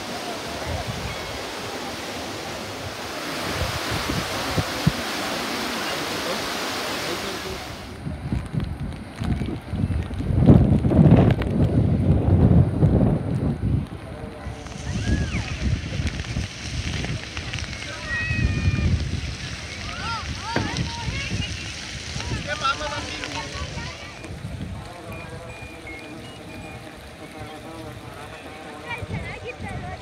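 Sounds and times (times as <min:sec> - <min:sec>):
water rushing along a channel: 0:00.0 - 0:30.0
wind rumbling on microphone: 0:00.0 - 0:30.0.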